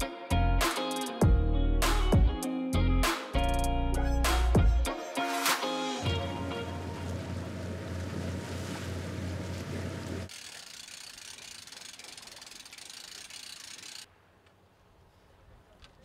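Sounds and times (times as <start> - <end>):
rush of water and wind: 6.0 - 10.3
outboard motor hum: 6.0 - 14.0.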